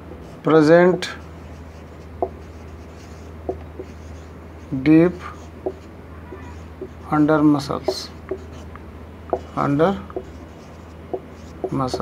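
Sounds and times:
marker scratching on whiteboard: 0.2s - 12.0s
marker tip ticking on board: 9.3s - 9.5s, 10.1s - 10.4s, 11.1s - 12.0s.

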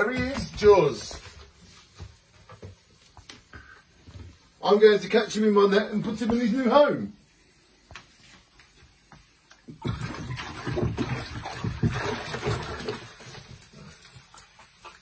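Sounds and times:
water splashing in plastic tub: 9.6s - 15.0s.

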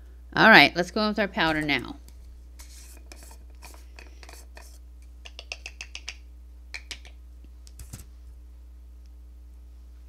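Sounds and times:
brush scratching and rubbing: 2.6s - 4.8s.

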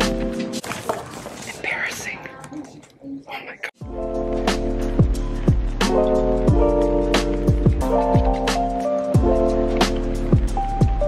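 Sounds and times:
person whispering: 1.5s - 3.8s.

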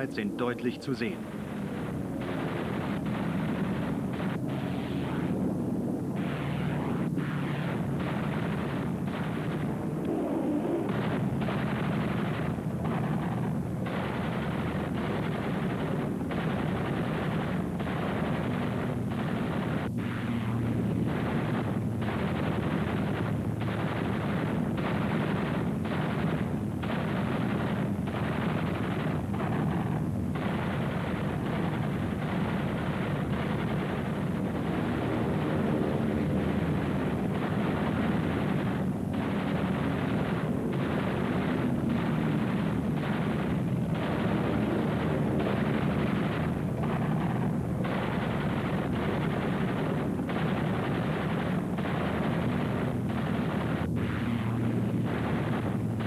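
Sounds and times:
aircraft engines droning: 0.0s - 11.4s, 33.4s - 40.8s
machine-gun and cannon fire: 0.0s - 56.0s.

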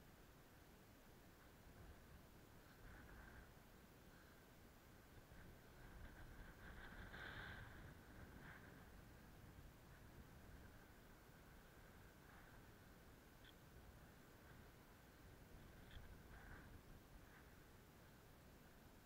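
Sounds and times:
faint low rumble: 0.0s - 19.0s.

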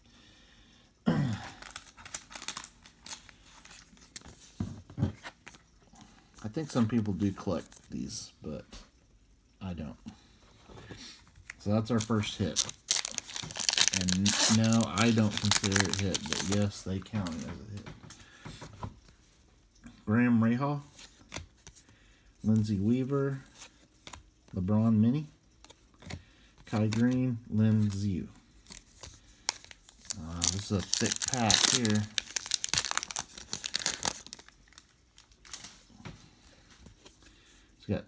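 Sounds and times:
foil wrapper tearing and crinkling: 1.6s - 3.8s, 11.8s - 16.7s, 28.7s - 35.7s.

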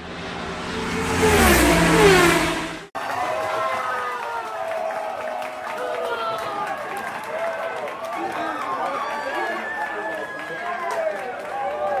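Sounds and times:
car engine passing by: 0.0s - 2.9s.

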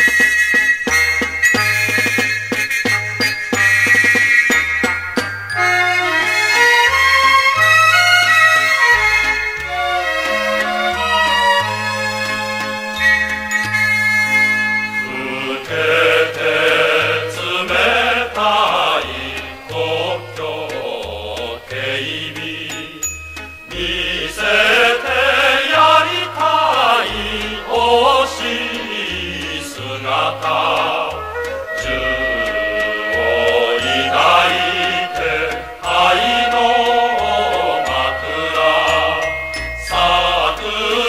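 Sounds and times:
instrumental accompaniment: 0.0s - 41.0s
mixed choir singing: 15.0s - 23.1s, 23.7s - 41.0s.

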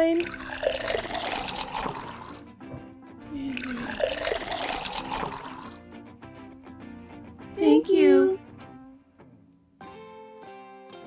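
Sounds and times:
liquid pouring into cup: 0.0s - 2.5s, 3.3s - 5.8s
soft background music: 0.0s - 11.0s.

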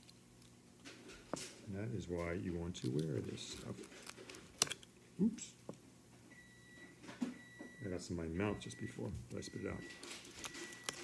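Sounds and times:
man speaking: 5.2s - 5.7s, 7.8s - 9.9s.

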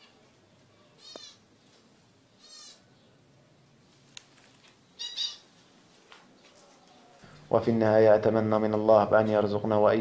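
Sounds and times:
zebra finch nasal calls: 2.4s - 2.9s, 5.0s - 5.5s.

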